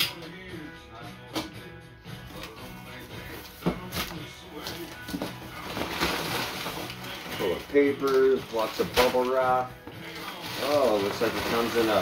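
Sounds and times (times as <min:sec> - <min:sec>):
faint background music: 0:00.0 - 0:12.0
packing paper rustling: 0:03.3 - 0:12.0.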